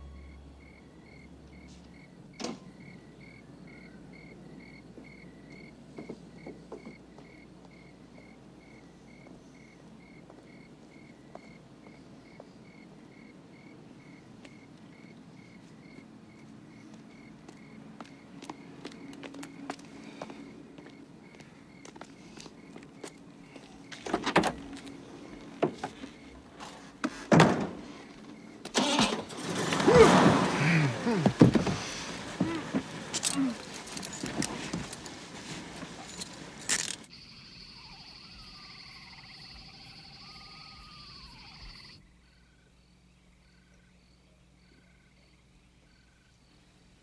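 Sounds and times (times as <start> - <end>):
insect trill: 0.0 - 5.7, 33.1 - 46.7
frogs gliding calls: 0.0 - 26.5, 36.8 - 46.9
crickets chirping: 0.0 - 47.0
high insect drone: 36.0 - 46.7.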